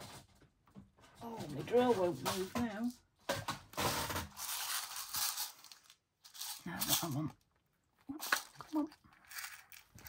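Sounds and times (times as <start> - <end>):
plastic box of metal eyelets handled: 4.4 - 7.3.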